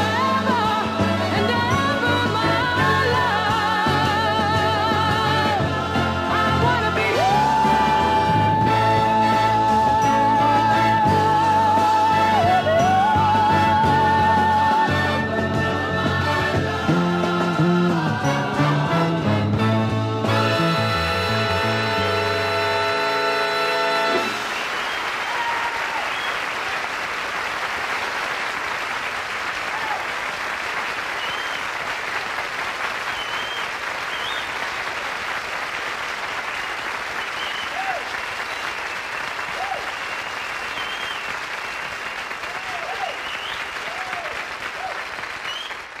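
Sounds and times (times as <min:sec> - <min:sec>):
audience applauding and cheering: 0:02.7 - 0:17.1, 0:23.0 - 0:46.0
whistles from audience: 0:24.3 - 0:26.5, 0:31.1 - 0:31.8, 0:33.1 - 0:34.6, 0:36.4 - 0:45.9.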